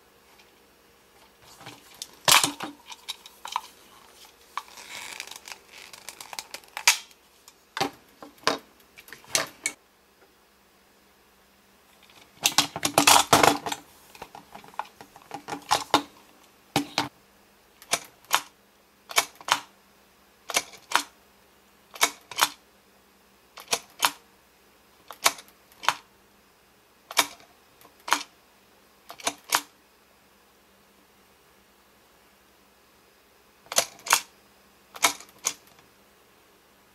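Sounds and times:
plastic toy parts clacking: 1.4s - 7.2s, 12.1s - 16.2s, 25.1s - 26.0s, 27.1s - 28.3s, 33.7s - 34.3s, 35.0s - 35.6s
plastic toy mechanism clicking: 4.6s - 7.2s, 17.8s - 18.5s, 19.1s - 19.7s, 20.5s - 21.1s, 21.9s - 22.6s, 23.6s - 24.2s, 25.1s - 26.0s, 27.1s - 28.3s, 29.1s - 29.7s, 33.7s - 34.3s, 35.0s - 35.8s.

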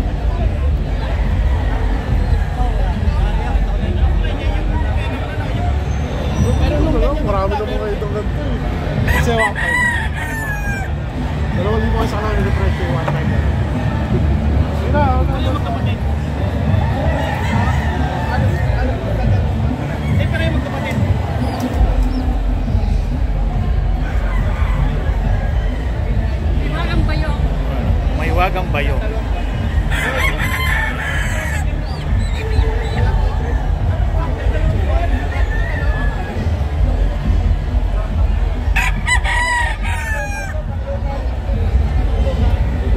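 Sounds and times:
low crowd hum: 0.0s - 42.9s
rooster crowing: 9.1s - 10.9s, 29.9s - 31.7s, 38.8s - 40.6s.

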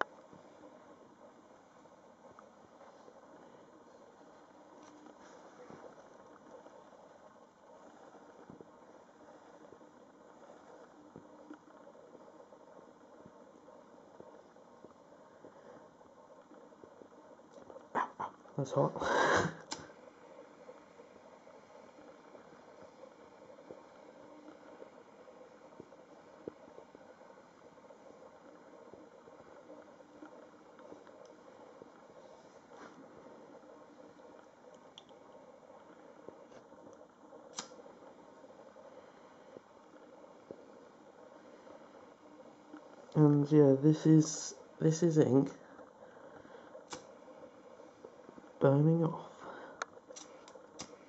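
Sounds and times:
lighter flame hissing: 18.7s - 20.0s, 37.4s - 37.9s, 46.7s - 47.2s, 49.7s - 51.0s
small ticks: 33.6s - 43.5s, 49.5s - 51.0s
lighter click: 37.5s - 37.8s, 46.9s - 47.1s, 50.1s - 51.0s.

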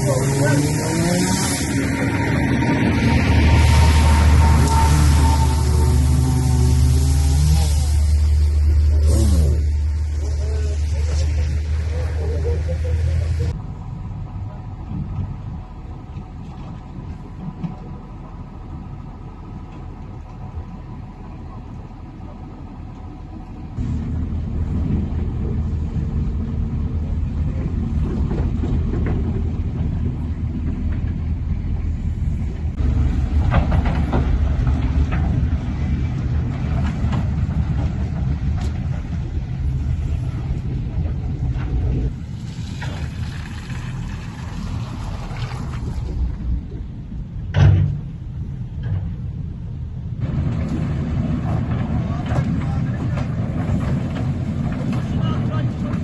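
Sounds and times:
heavy vehicle engines rumbling: 0.0s - 56.0s.

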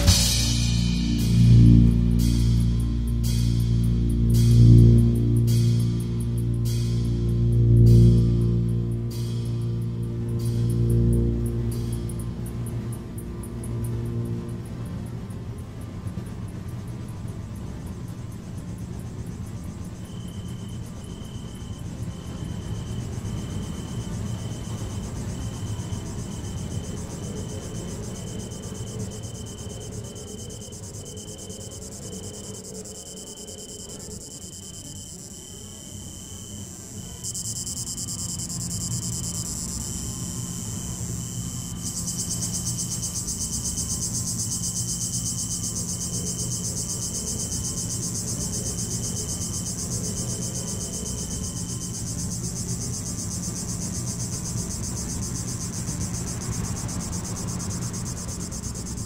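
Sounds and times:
high cricket-like electronic chirp: 0.0s - 59.0s
high hiss: 0.0s - 59.0s
low drone: 0.0s - 59.0s.

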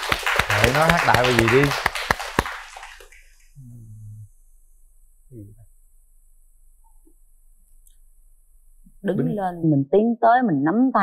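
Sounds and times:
sharp hand claps: 0.0s - 3.2s
people laughing: 0.5s - 1.8s
man humming: 3.6s - 4.3s, 5.3s - 5.6s.

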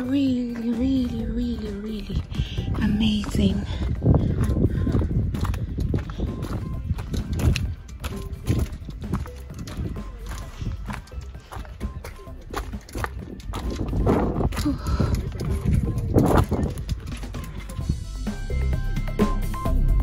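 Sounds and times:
footsteps crunching on gravel: 0.0s - 18.3s
music: 0.0s - 20.0s.

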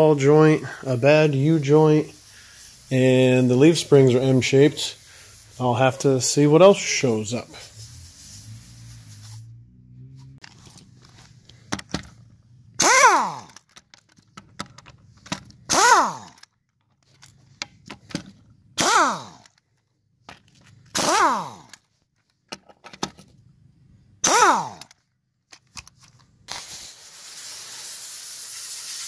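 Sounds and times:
impact wrench hammering: 12.8s - 13.6s, 15.3s - 16.4s, 24.2s - 24.9s.

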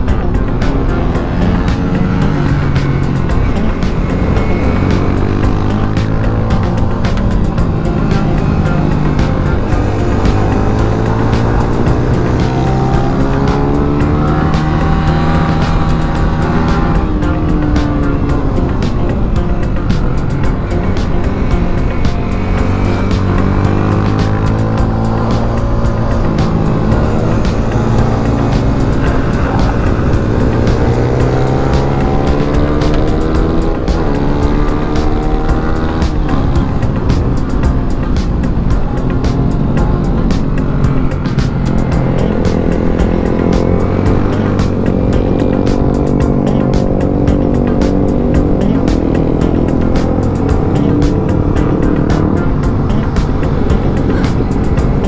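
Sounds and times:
motorcycle engine revving hard: 0.0s - 55.0s.

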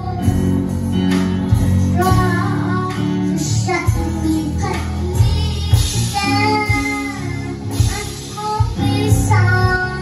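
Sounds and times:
girl singing: 0.0s - 0.7s, 1.5s - 10.0s
keyboard: 0.0s - 10.0s.

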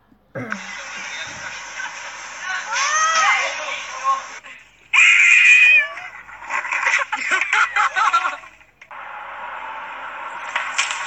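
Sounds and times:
person speaking: 0.4s - 1.8s
steady hiss: 0.4s - 4.7s.

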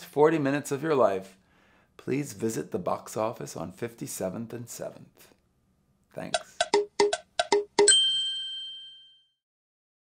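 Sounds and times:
bell-like chime: 7.8s - 9.4s.

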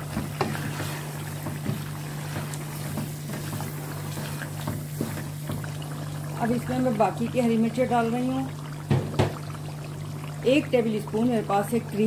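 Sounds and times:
spatula knocking and scraping pan: 0.0s - 5.7s
meat sizzling in oil: 0.0s - 12.0s.

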